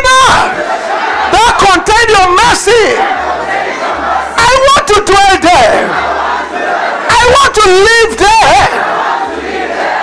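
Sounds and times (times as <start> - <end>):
congregation praying aloud: 0.0 - 10.0.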